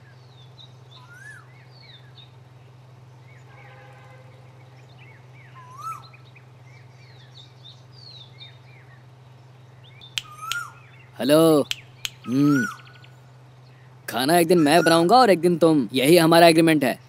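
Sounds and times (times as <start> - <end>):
small birds chirping: 0.0 - 3.7, 4.3 - 17.0
steady low hum: 4.3 - 17.0.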